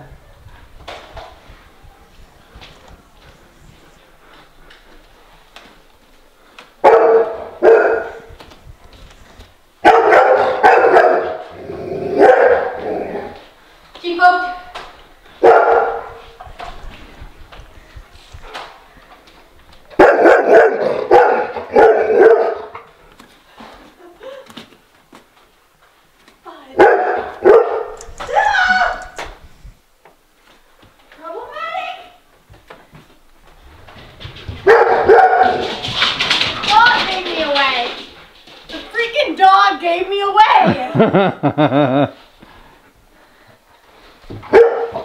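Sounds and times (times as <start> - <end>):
dog barking: 6.8 - 8.3, 9.8 - 11.5, 12.1 - 12.8, 15.4 - 16.2, 20.0 - 22.8, 26.8 - 28.0, 34.6 - 35.8, 44.5 - 45.0.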